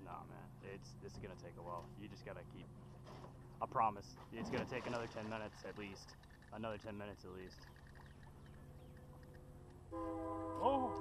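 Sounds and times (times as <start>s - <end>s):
faint low hum: 0.0s - 11.0s.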